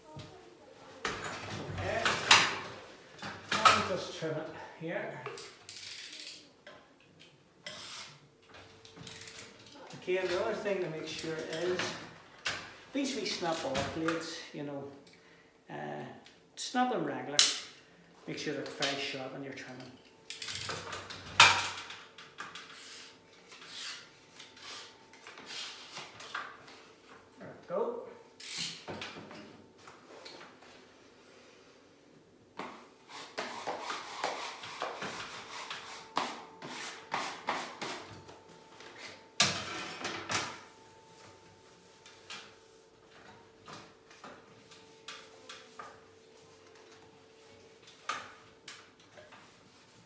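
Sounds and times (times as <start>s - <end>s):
wallpaper rustling and rubbing: 22.6s - 27.1s, 32.7s - 38.1s, 40.6s - 50.0s.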